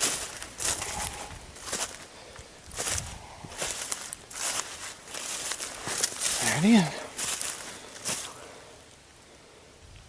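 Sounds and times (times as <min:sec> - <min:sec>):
footsteps crunching dry leaves: 0:00.0 - 0:08.6.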